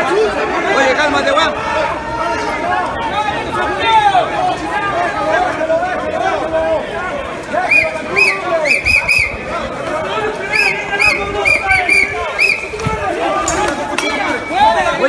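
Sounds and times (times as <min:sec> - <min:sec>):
crowd shouting and yelling: 0:00.0 - 0:15.0.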